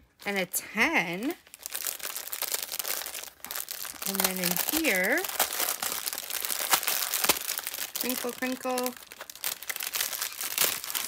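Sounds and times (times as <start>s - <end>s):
plastic bag crinkling: 0.1s - 11.0s.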